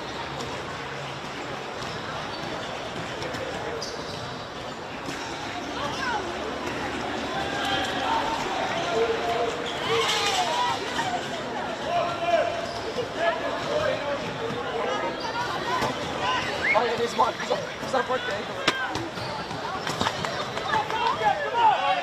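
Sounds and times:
players shouting: 5.7 - 22.0.

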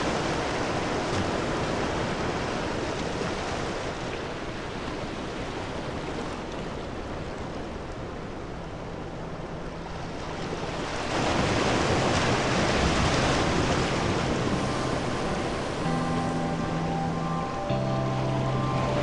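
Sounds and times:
sea surf washing around rocks: 0.0 - 8.5, 9.9 - 19.0.

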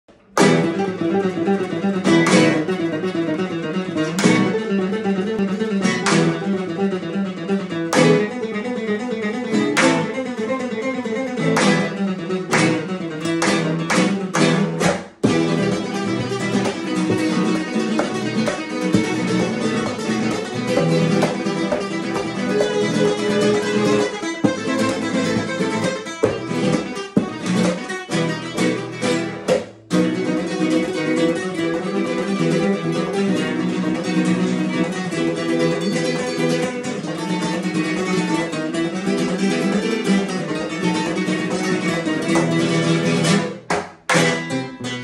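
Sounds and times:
nylon-string guitars playing waltz: 0.2 - 45.0.

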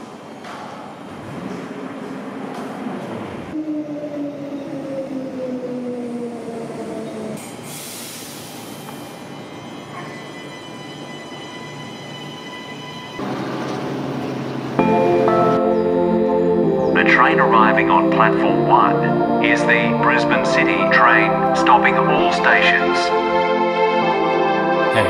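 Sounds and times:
train humming while standing: 0.0 - 25.0
air hiss: 7.4 - 9.3
electric train motor whine: 8.8 - 15.3.

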